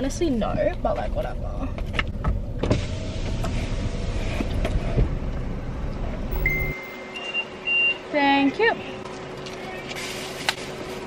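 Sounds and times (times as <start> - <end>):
high electronic tone: 6.3 - 8.1.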